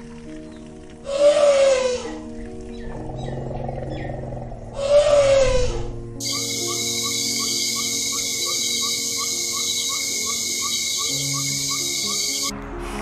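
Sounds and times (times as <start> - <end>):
soft piano music: 0.0 - 13.0
elephant trumpeting: 2.9 - 12.5.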